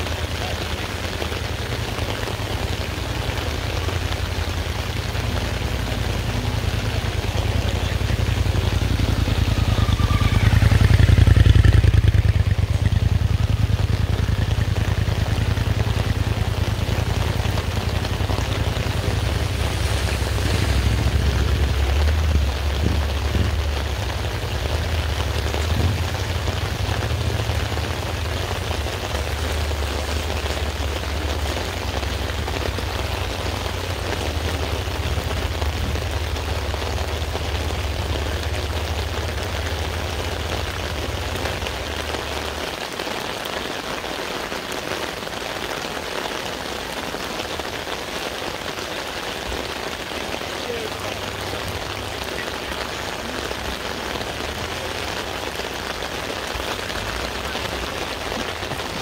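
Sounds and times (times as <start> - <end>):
motorcycle engine running: 0.0 - 42.6
rain falling on wet ground: 0.0 - 59.0.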